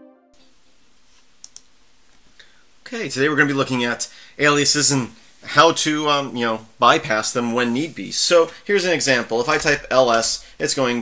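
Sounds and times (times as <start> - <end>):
faint steady hiss: 0.4 - 11.0
sharp clicks: 1.4 - 1.7.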